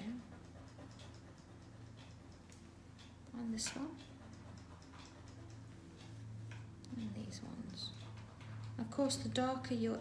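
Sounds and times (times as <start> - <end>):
coloured pencil tapping on paper: 0.0 - 5.8
low steady hum: 0.0 - 10.0.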